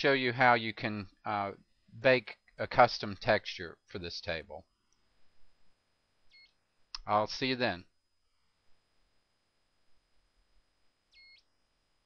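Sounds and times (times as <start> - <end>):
faint high whine: 0.0 - 12.0
faint beep: 11.2 - 11.5.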